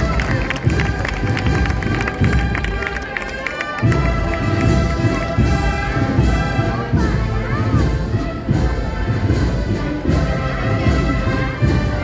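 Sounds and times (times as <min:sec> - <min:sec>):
brass band music: 0:00.0 - 0:12.0
street crowd chatter: 0:00.0 - 0:12.0
heavy drum beat: 0:03.9 - 0:12.0.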